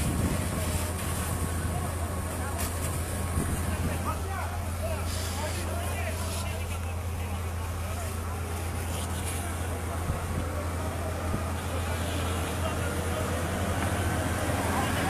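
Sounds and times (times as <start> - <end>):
low engine rumble: 0.0 - 15.0.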